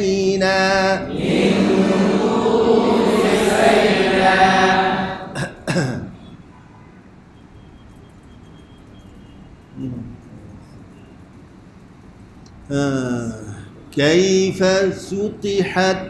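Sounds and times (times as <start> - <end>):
man chanting: 0.0 - 5.4, 12.7 - 16.0
harsh throat sounds: 5.2 - 6.1.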